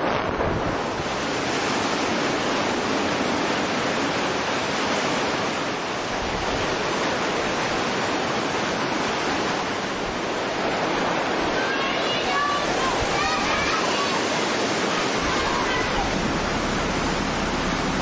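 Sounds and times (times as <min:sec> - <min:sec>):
strong wind and rain: 0:00.0 - 0:18.0
wind buffeting microphone: 0:00.0 - 0:18.0.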